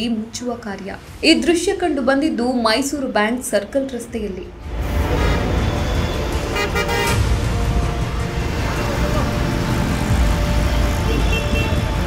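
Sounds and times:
background music: 0:00.0 - 0:12.0
street traffic rumble: 0:00.0 - 0:12.0.

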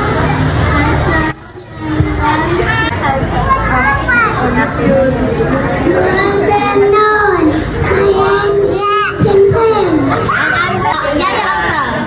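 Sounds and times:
young children talking: 0:00.0 - 0:12.0.

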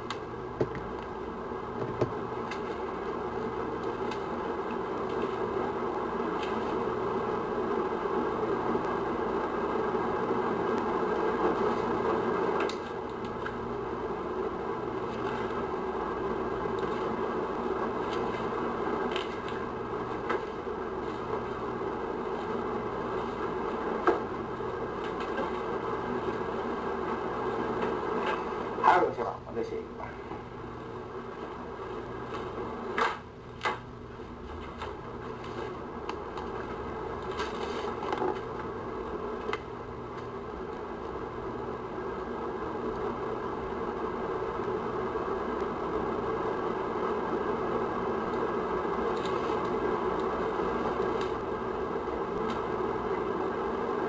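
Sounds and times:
faint low hum: 0:00.0 - 0:54.0.

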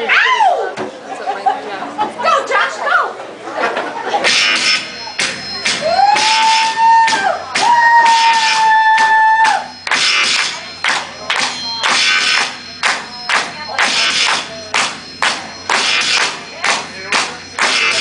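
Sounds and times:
held high bending note: 0:04.2 - 0:18.0.

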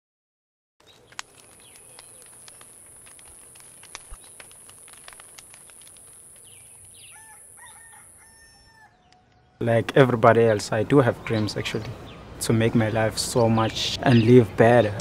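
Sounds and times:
bird calls: 0:00.8 - 0:02.8, 0:06.3 - 0:09.7
campfire crackling and popping: 0:00.8 - 0:08.4.

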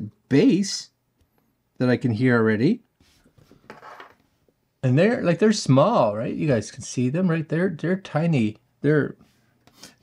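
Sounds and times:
earbuds rubbing and rustling: 0:03.0 - 0:04.6.

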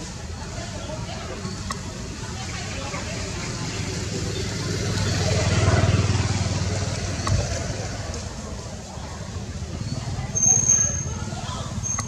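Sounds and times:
people's voices: 0:00.0 - 0:12.0
vehicle passing by: 0:03.1 - 0:11.8.

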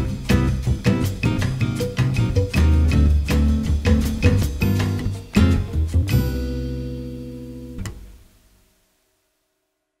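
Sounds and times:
guitar chord ringing out: 0:06.1 - 0:08.0.

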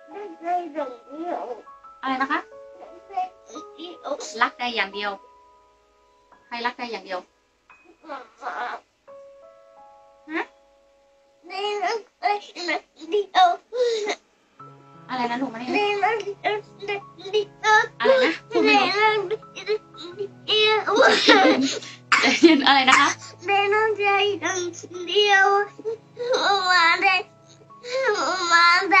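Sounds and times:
child's sing-song voice: 0:15.2 - 0:21.8, 0:22.9 - 0:27.2, 0:27.9 - 0:29.0
toddler crying: 0:16.2 - 0:21.9, 0:24.2 - 0:27.3, 0:27.9 - 0:29.0.

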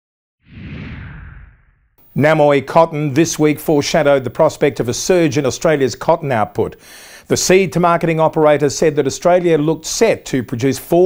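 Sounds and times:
low rumble: 0:00.5 - 0:02.0
whoosh sound effect: 0:00.5 - 0:02.0.

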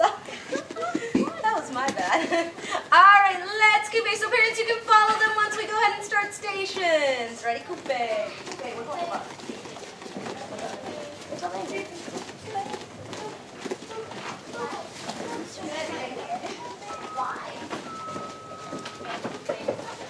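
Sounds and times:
indistinct chatter of people: 0:00.0 - 0:20.0.

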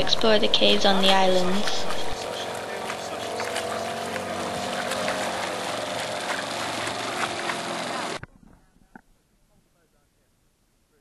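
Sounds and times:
outboard motor running: 0:00.0 - 0:09.0.

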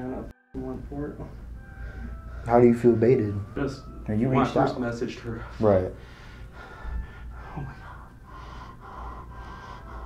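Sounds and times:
man breathing heavily: 0:01.6 - 0:02.6, 0:05.3 - 0:10.0.

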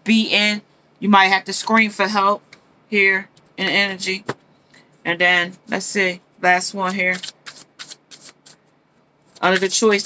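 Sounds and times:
cards being shuffled: 0:06.7 - 0:08.7, 0:09.3 - 0:10.0.

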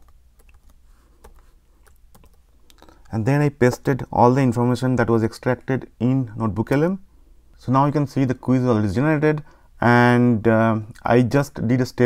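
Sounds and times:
computer keyboard keystrokes: 0:00.0 - 0:02.4.

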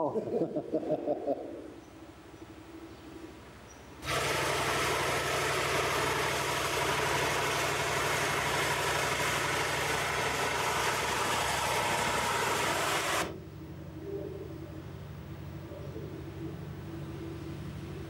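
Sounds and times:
machine running loudly: 0:04.0 - 0:13.4.

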